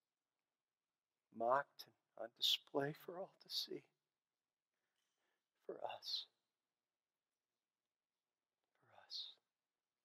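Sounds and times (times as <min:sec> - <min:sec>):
man's soft voice: 0:01.2 - 0:04.0, 0:05.6 - 0:06.5, 0:08.7 - 0:09.6.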